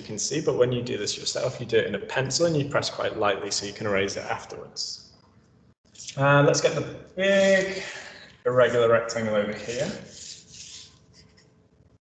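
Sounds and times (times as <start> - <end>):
marker pen on whiteboard: 9.5 - 12.0.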